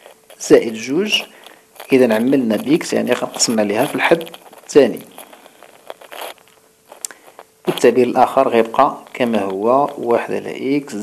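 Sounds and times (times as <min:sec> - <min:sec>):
pen scratching handwriting: 0:00.0 - 0:10.5.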